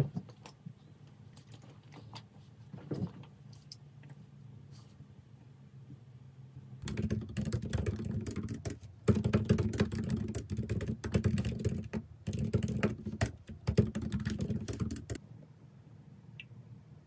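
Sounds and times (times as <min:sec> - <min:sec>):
typing on laptop keyboard: 0:06.8 - 0:15.2.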